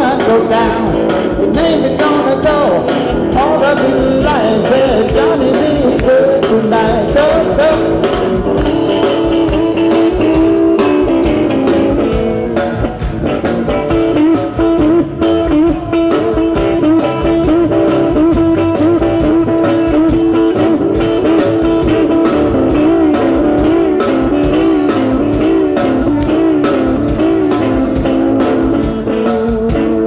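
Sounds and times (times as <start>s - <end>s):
blues band playing live: 0.0s - 30.0s
guitar with bent notes: 0.0s - 30.0s.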